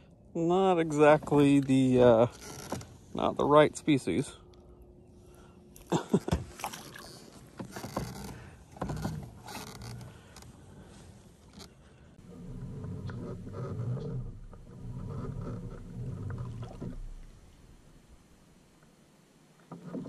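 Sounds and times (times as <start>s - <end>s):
fish splashing in water: 6.5s - 7.3s.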